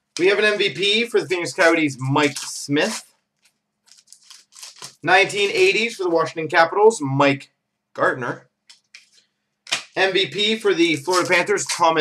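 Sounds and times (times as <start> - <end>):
trading cards rustling: 0.2 - 5.7, 8.7 - 10.0, 11.0 - 11.9.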